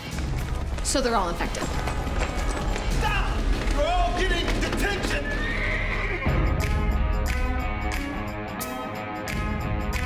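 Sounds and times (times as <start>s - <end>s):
dramatic trailer music: 0.0s - 10.0s
horse whinny: 4.6s - 6.5s.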